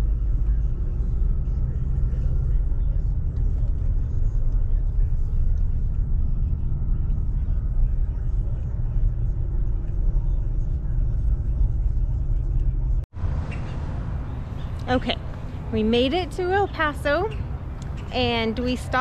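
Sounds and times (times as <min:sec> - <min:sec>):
vehicle engine and road rumble: 0:00.0 - 0:19.0.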